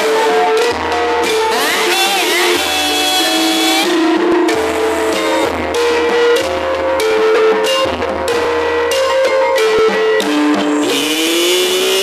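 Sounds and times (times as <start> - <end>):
drumming: 0.0 - 12.0
metallophones and gongs ringing: 0.0 - 12.0.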